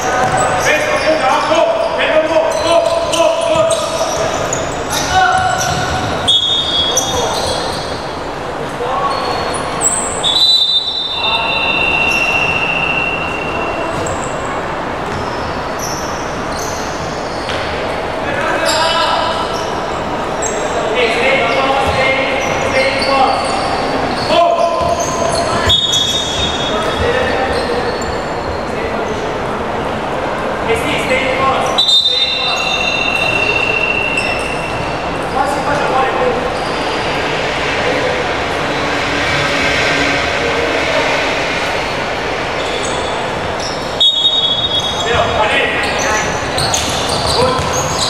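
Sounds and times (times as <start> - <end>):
shoe squeaks: 0.0 - 17.7, 18.4 - 29.4, 31.6 - 37.3, 40.8 - 48.0
basketball hall background noise: 0.0 - 48.0
echoing voices: 0.0 - 48.0
ball bouncing on wooden court: 5.3 - 6.2, 46.6 - 48.0
high-pitched squeal: 36.3 - 48.0.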